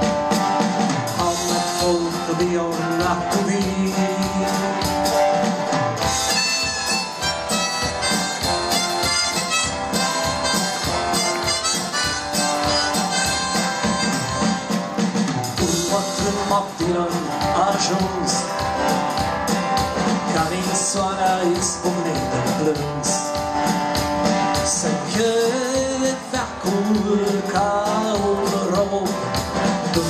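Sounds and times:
acoustic guitar strumming: 0:00.0 - 0:30.0
sustained lead melody: 0:03.8 - 0:20.2.

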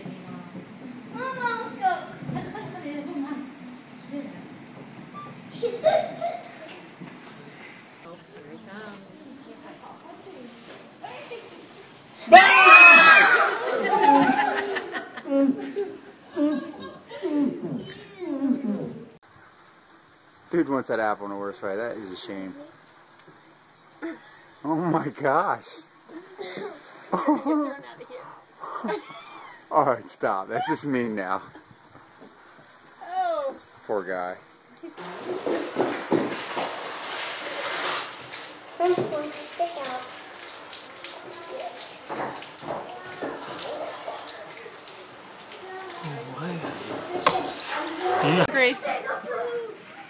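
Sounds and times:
excited exclamations: 0:12.3 - 0:14.6
people laughing: 0:13.0 - 0:17.4, 0:26.2 - 0:29.7, 0:48.0 - 0:49.9.

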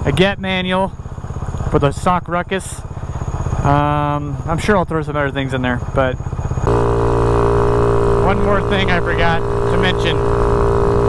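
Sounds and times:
scooter engine: 0:00.0 - 0:11.0.

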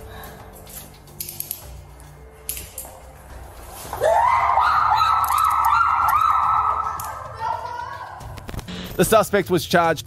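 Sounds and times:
woman screaming: 0:04.0 - 0:08.2.

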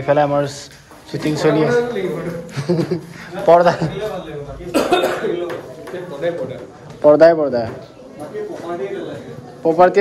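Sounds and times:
voices: 0:00.0 - 0:10.0
person coughing: 0:04.7 - 0:05.4.

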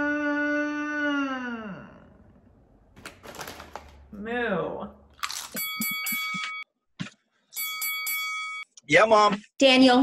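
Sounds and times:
phone ringing electronic trill: 0:05.6 - 0:06.6.

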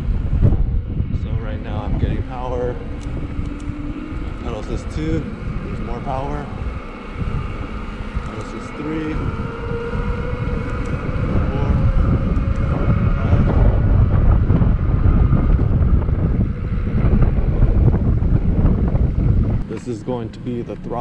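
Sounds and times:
electric motor whine: 0:00.0 - 0:21.0
wind rumbling over microphone: 0:00.0 - 0:21.0.

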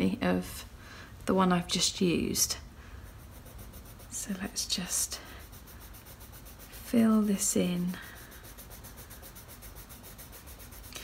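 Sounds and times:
pencil rubbing on paper: 0:01.6 - 0:11.0.

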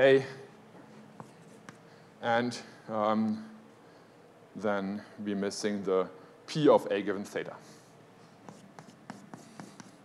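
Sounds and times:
chalk writing on blackboard: 0:01.2 - 0:01.9, 0:08.4 - 0:10.0.

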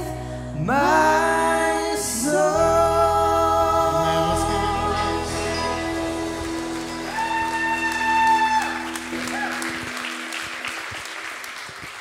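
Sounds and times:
congregation applauding: 0:05.2 - 0:12.0.

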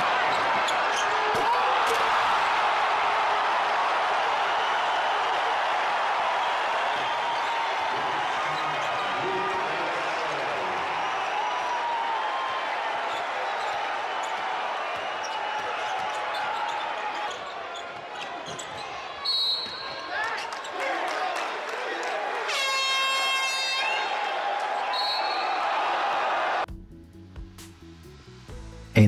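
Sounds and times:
crowd cheering: 0:00.0 - 0:26.7
arena horn: 0:22.5 - 0:24.1.

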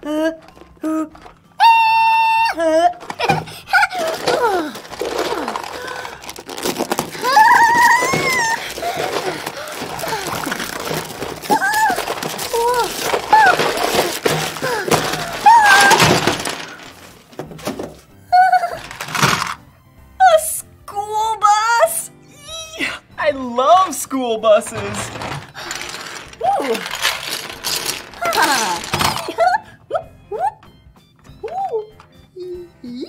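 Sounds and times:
cardboard packaging rustling: 0:03.0 - 0:18.1, 0:18.7 - 0:19.6, 0:24.6 - 0:29.3.

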